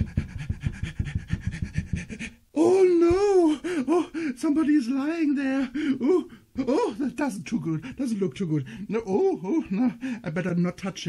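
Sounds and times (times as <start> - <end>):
man panting rapidly: 0.0 - 2.5, 3.4 - 4.4, 5.7 - 6.5, 8.6 - 8.9, 9.9 - 10.3.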